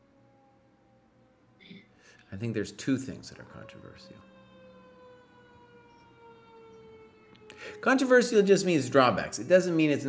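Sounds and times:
siren-like wail: 0.0 - 10.0.

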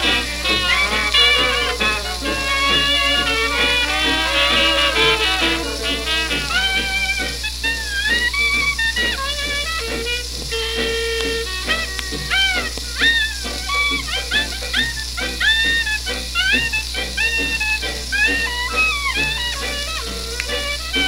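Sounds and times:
low hum: 0.0 - 15.2
jazz band record: 0.0 - 21.0
record surface hiss: 0.0 - 21.0.

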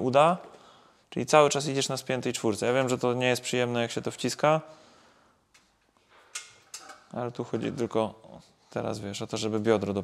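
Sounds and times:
person breathing: 0.5 - 1.1, 4.7 - 5.5.

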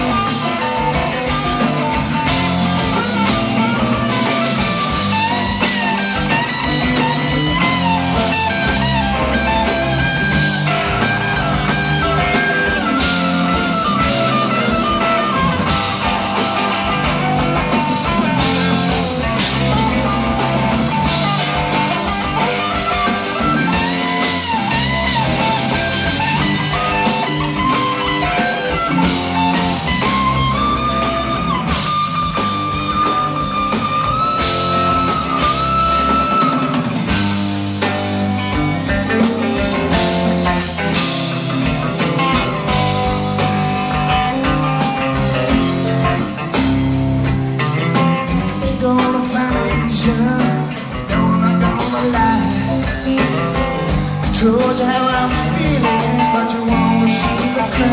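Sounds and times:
bass guitar: 0.0 - 57.9
drum kit: 0.0 - 57.9
lead guitar bending notes: 0.0 - 57.9.

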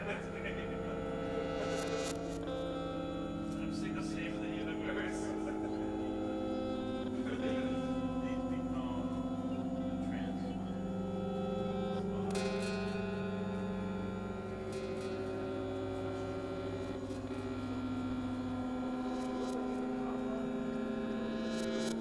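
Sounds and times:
synthesizer drone: 0.0 - 22.0.

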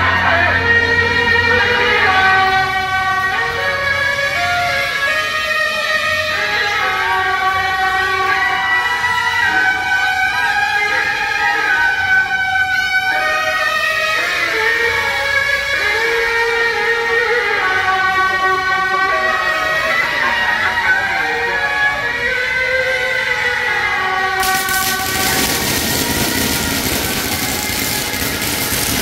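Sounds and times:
shawms playing long notes: 24.4 - 29.0.

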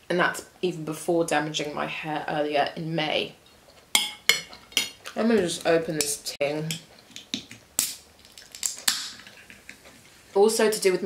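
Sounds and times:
can cracking open with hiss: 7.8 - 9.8.

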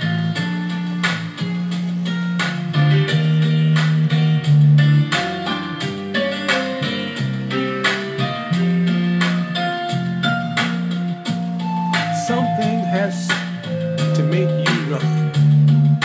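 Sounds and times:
electric bass guitar low notes: 0.0 - 16.0
slow ballad instrumental: 0.0 - 16.0.

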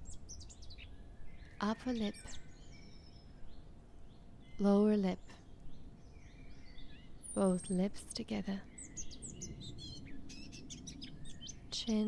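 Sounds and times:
low steady hiss: 0.0 - 12.0.

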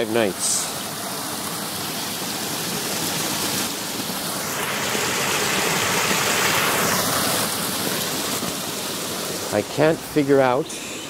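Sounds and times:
water rushing in canal: 0.0 - 11.0.

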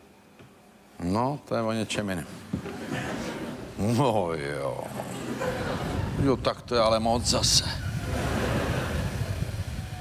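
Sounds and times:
studio audience crowd noise: 2.6 - 10.0.

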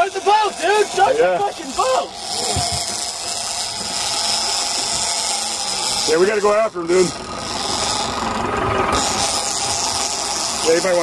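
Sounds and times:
fishing reel clicker buzzing: 1.7 - 11.0.

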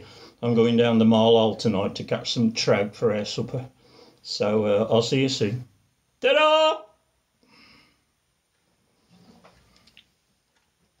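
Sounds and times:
faint clicks: 9.5 - 10.8.

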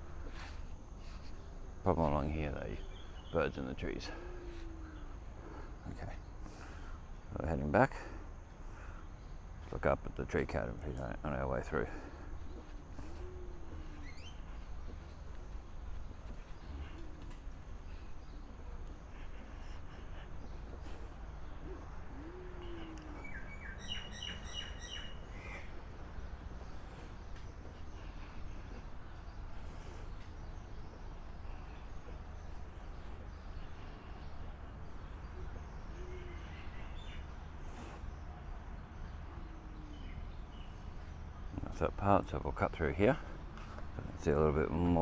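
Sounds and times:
low outdoor rumble: 0.0 - 45.0
low soft bird call: 12.0 - 41.6
sharp bird chirping: 12.5 - 15.2, 21.4 - 26.8.

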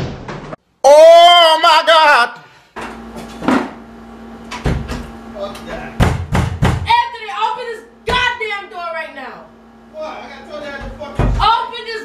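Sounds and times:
person shouting: 0.8 - 2.4
hand banging on wooden door: 6.0 - 6.9.

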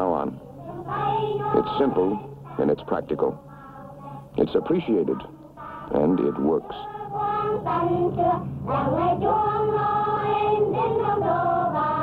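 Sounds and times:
high voices singing together: 0.0 - 12.0.

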